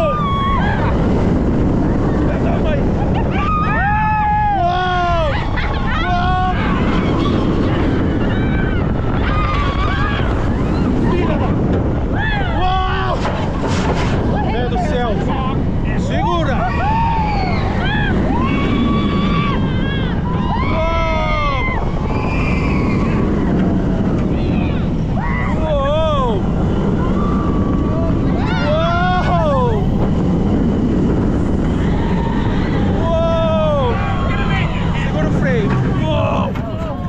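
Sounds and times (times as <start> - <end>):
riders screaming and whooping: 0.0 - 37.0
wind rushing on microphone: 0.0 - 37.0.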